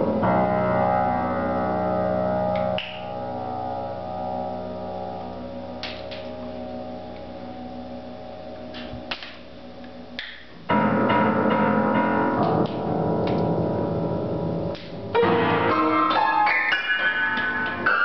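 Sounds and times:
piano note clusters: 0:00.0 - 0:18.0.

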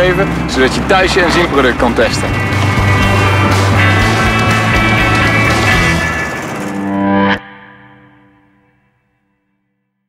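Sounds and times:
guitar background music: 0:01.6 - 0:09.3.

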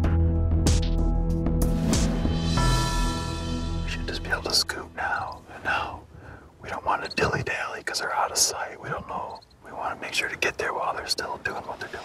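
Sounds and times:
man whispering: 0:03.9 - 0:12.0.

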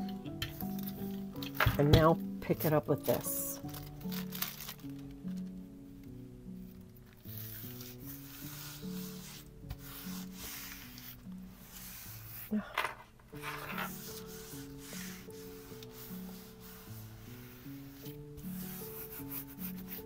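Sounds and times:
soft background music: 0:00.0 - 0:20.0
hands rubbing tissue paper: 0:02.6 - 0:05.2, 0:07.1 - 0:12.6, 0:13.3 - 0:20.0.

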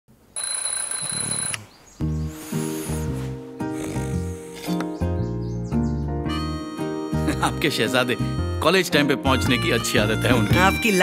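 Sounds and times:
alarm clock bell ringing: 0:00.4 - 0:01.6.

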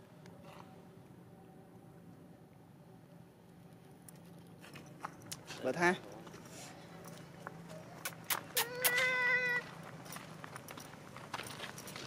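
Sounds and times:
monkey high-pitched cry: 0:08.5 - 0:09.7.

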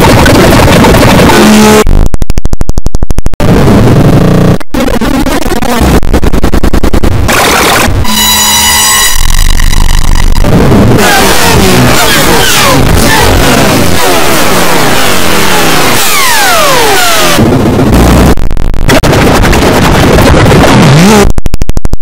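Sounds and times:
harsh buzzing tone: 0:00.0 - 0:22.0.

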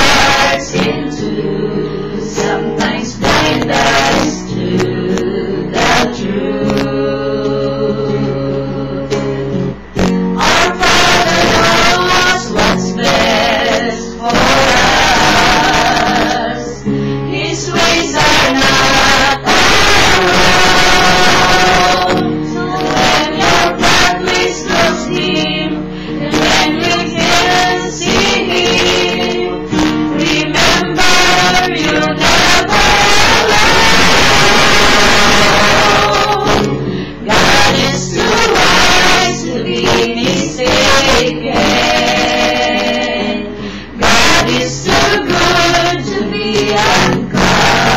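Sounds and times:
acoustic guitar: 0:00.0 - 0:47.9
group of people singing: 0:00.0 - 0:47.9.

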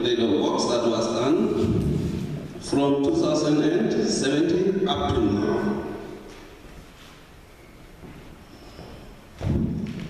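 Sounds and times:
microphone handling thump: 0:09.4 - 0:10.0.

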